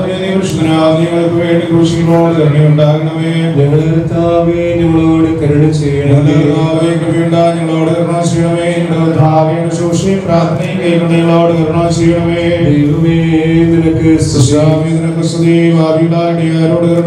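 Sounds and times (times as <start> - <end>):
man chanting a prayer: 0.0 - 17.0.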